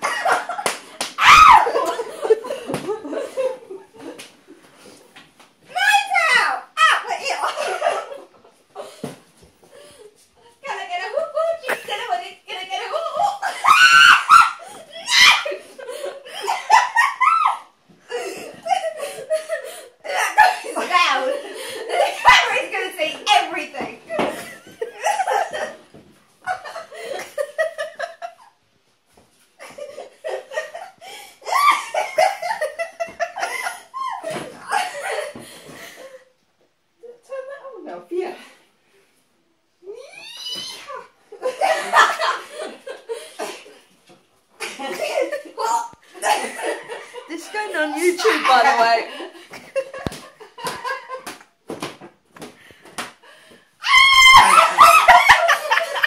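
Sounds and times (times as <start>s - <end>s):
people laughing loudly: 0.0s - 4.2s, 12.8s - 22.8s, 24.2s - 25.8s, 29.6s - 35.4s, 41.4s - 43.7s, 44.6s - 51.3s, 53.9s - 56.0s
people shrieking: 1.2s - 1.9s, 13.3s - 15.6s, 39.9s - 41.1s, 53.8s - 55.5s.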